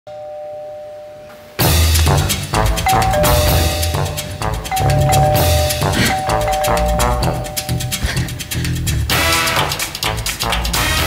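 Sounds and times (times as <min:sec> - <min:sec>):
two-tone doorbell chime: 0:00.1 - 0:01.3, 0:02.9 - 0:08.3
loud music with drums: 0:01.6 - 0:11.0.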